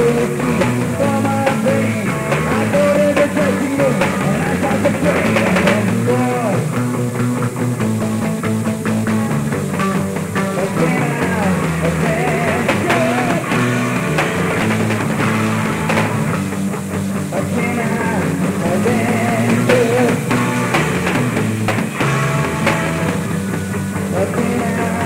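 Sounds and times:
bass guitar: 0:00.0 - 0:25.0
drum kit: 0:00.0 - 0:25.0
electric guitar: 0:00.0 - 0:25.0.

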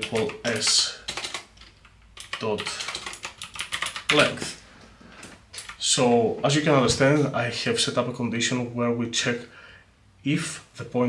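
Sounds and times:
computer keyboard typing: 0:00.0 - 0:04.6, 0:05.2 - 0:05.8.

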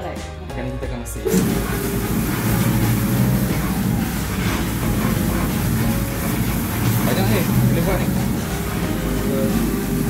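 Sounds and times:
electric stirrer motor humming: 0:01.2 - 0:10.0.

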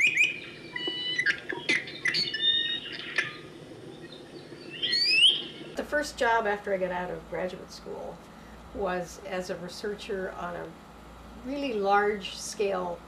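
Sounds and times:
slurred sweeping whistle: 0:00.0 - 0:01.3
small birds chirping: 0:00.0 - 0:05.8.

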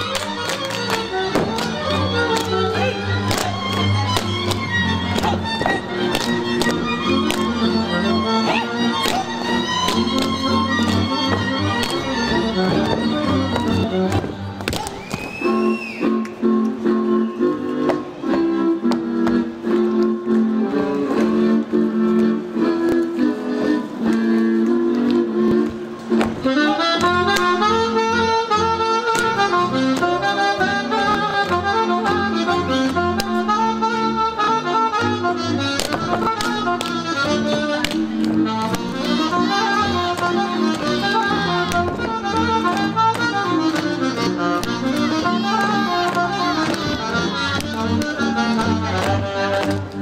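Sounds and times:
folk dance band playing: 0:00.0 - 0:50.0
boot slaps and stamps: 0:01.3 - 0:01.7, 0:03.2 - 0:07.6, 0:08.9 - 0:12.0, 0:35.8 - 0:38.9.

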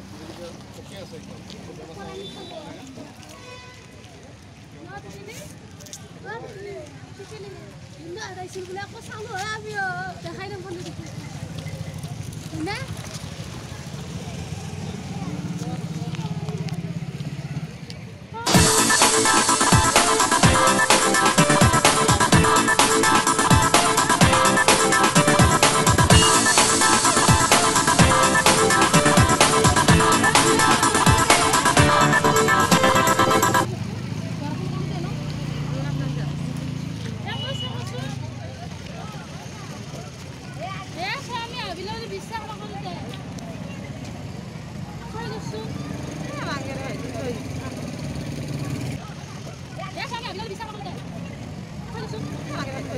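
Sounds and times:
faint voices: 0:00.0 - 0:52.9
electronic music: 0:18.5 - 0:33.7.

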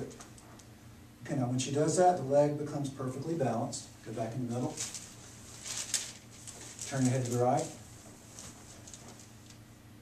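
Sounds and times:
low steady hum: 0:00.0 - 0:10.0
paper sheet crinkling and rustling: 0:04.7 - 0:09.6.

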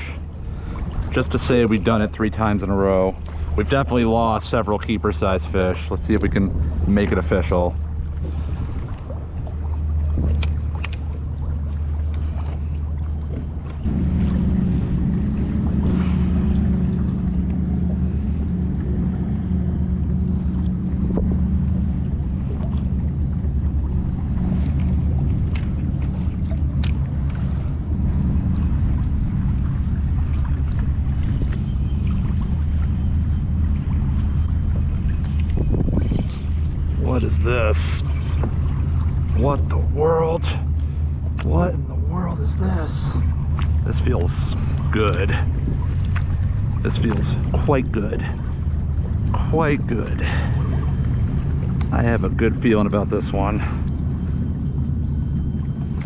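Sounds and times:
wind noise: 0:00.0 - 0:11.5, 0:12.3 - 0:40.6, 0:42.6 - 0:54.5
low hum: 0:00.0 - 0:56.0
faint clicks: 0:24.6 - 0:27.5.

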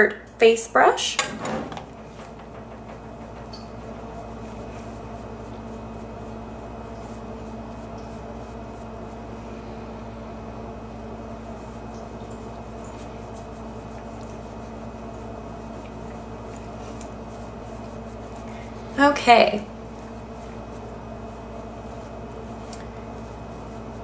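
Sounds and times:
low room hum: 0:00.0 - 0:24.0.

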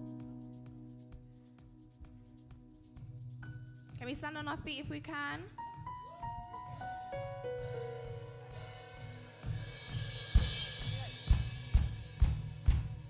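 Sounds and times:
live church band: 0:06.1 - 0:13.0
kick drum beat: 0:10.3 - 0:13.0.

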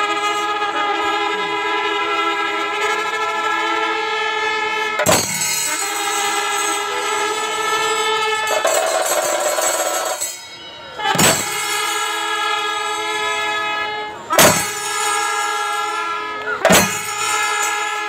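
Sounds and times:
horns holding long notes: 0:00.0 - 0:18.0.

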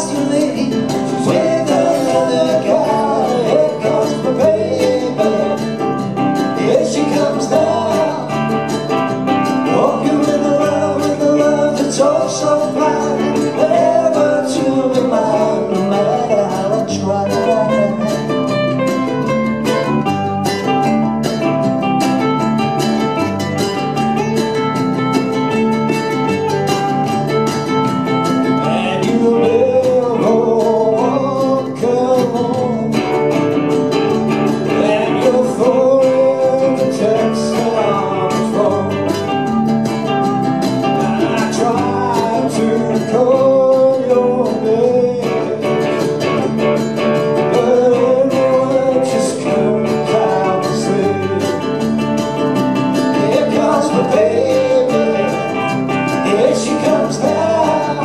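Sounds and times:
ukulele picked melody: 0:00.0 - 0:58.0
ukulele strummed chords: 0:00.0 - 0:58.0.

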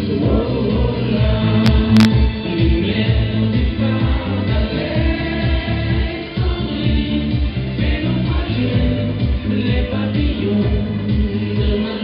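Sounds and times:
dance music with singing: 0:00.0 - 0:12.0.

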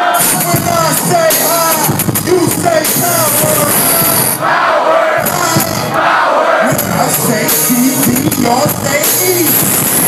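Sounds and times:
crowd noise: 0:00.0 - 0:10.0
hip-hop music through pa: 0:00.0 - 0:10.0.

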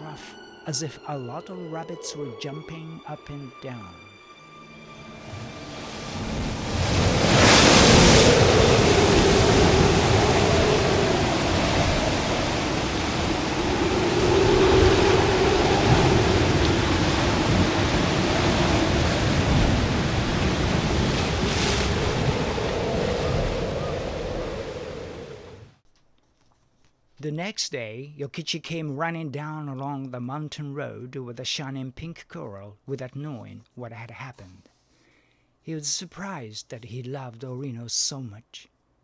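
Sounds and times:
wind howling: 0:05.1 - 0:25.8
wave crashing: 0:05.2 - 0:25.6
heavy surf: 0:05.3 - 0:25.6.

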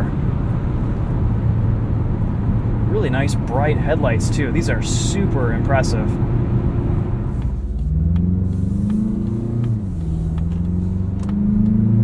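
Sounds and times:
car engine accelerating: 0:00.0 - 0:12.0
road rumble: 0:00.0 - 0:12.0.

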